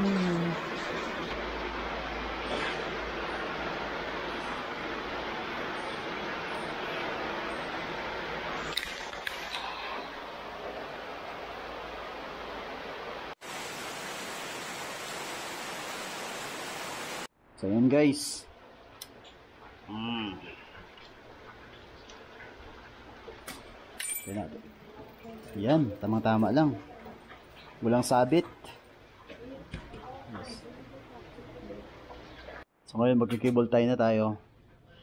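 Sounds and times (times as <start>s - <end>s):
heavy rain falling: 0.0s - 17.3s.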